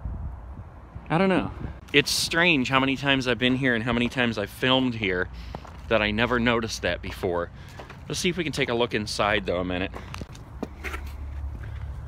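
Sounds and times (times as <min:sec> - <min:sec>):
footsteps crunching on snow: 0:01.8 - 0:08.7, 0:09.8 - 0:12.0.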